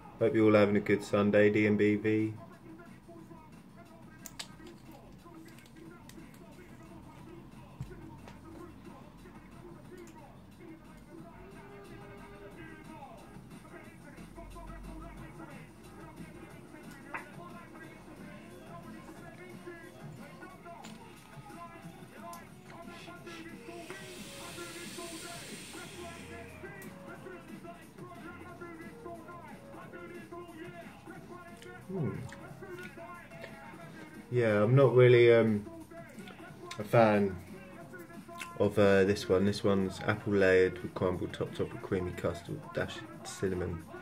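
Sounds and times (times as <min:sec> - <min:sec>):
quiet background music: 0:00.0 - 0:44.0
vape coil hissing: 0:23.6 - 0:26.6.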